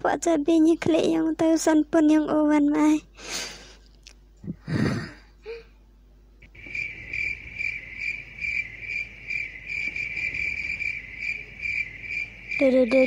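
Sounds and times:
cricket chirping: 0:06.4 - 0:13.0.

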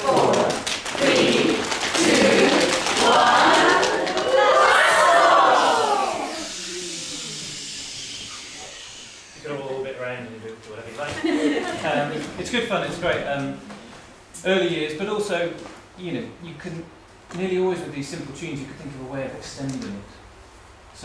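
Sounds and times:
group shouting countdown: 0:00.0 - 0:07.2
long swooping whoop: 0:03.0 - 0:09.3.

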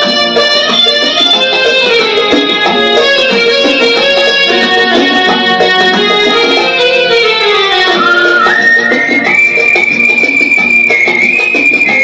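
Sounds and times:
rhythmic keyboard chords: 0:00.0 - 0:12.0
whistle-like keyboard lead: 0:04.5 - 0:12.0.

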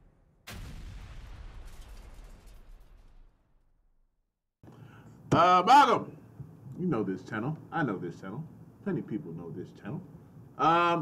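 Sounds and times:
cartoon explosion rumble: 0:00.1 - 0:04.1
faint room hum: 0:04.6 - 0:11.0.

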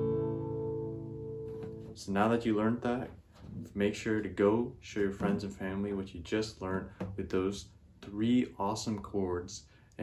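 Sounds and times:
acoustic guitar chord ringing: 0:00.0 - 0:02.0
guitar strings palm-muted: 0:01.3 - 0:02.0.

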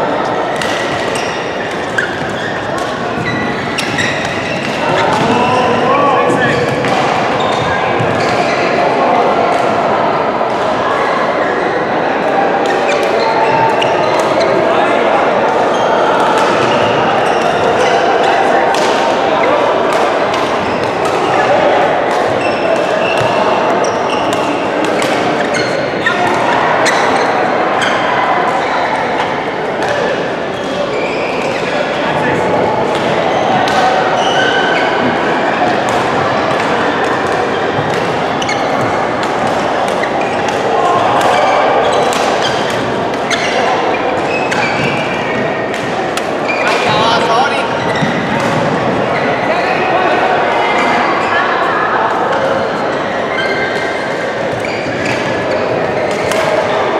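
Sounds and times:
chatter of many players: 0:00.0 - 0:56.9
rackets striking shuttlecocks: 0:00.5 - 0:05.5, 0:32.4 - 0:49.3.

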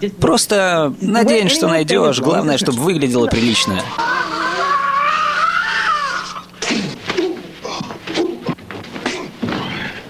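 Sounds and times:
man yelling: 0:01.2 - 0:04.0
men grunting and scuffling: 0:06.1 - 0:10.0.

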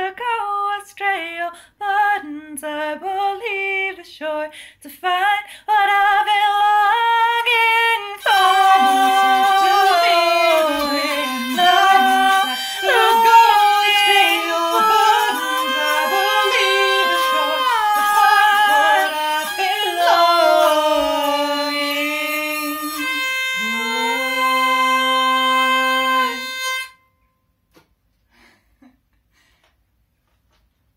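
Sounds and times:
woman singing wordlessly: 0:00.0 - 0:26.5
hurdy-gurdy folk melody: 0:06.9 - 0:27.0.

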